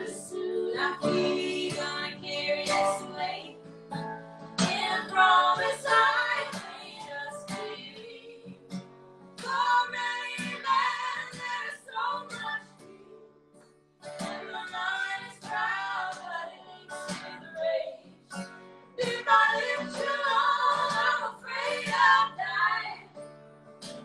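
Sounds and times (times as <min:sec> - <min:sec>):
women singing together: 0:00.0 - 0:03.6, 0:04.6 - 0:08.6, 0:09.4 - 0:13.2, 0:14.2 - 0:18.1, 0:19.0 - 0:23.1
acoustic guitar: 0:00.0 - 0:24.0.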